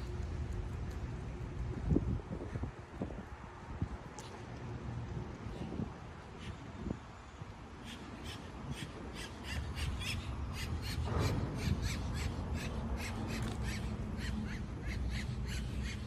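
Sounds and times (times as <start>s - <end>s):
traffic rumble: 0.0s - 16.0s
wind: 0.0s - 16.0s.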